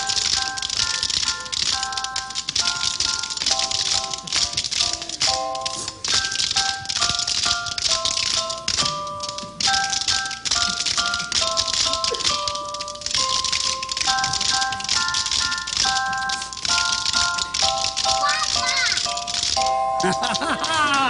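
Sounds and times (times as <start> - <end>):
hand bells jangling: 0.0 - 21.0.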